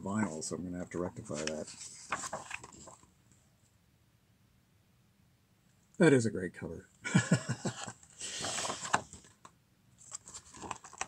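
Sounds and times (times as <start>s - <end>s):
paper page rustling: 1.2s - 3.1s, 7.7s - 9.4s, 10.0s - 11.0s.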